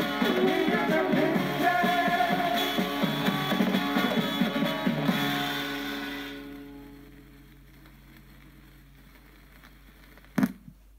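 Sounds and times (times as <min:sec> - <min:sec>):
guitar-band pop song from a record: 0:00.0 - 0:10.5
vinyl surface noise: 0:00.0 - 0:10.9.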